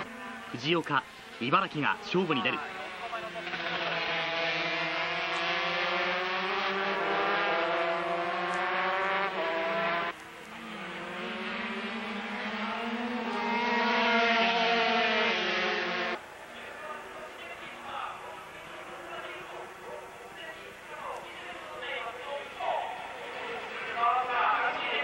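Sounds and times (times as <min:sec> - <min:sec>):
racing motorcycles at high revs: 0:02.5 - 0:16.2.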